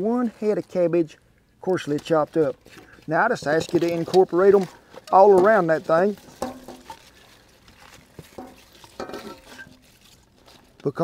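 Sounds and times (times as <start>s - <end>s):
rustling of leaves: 0.0s - 11.0s.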